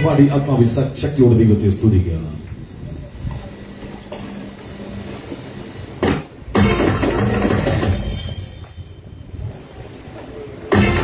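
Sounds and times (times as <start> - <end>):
sharp knock: 6.0 - 7.0
band on keyboard and electric guitar: 6.0 - 11.0.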